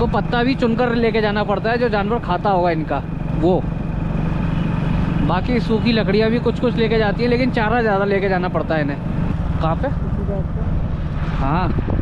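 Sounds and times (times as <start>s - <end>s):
motorcycle engine cruising: 0.0s - 12.0s
road noise: 0.0s - 12.0s.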